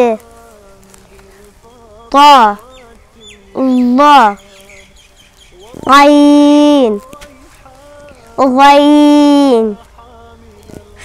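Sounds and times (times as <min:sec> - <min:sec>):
child reciting: 0:00.0 - 0:11.0.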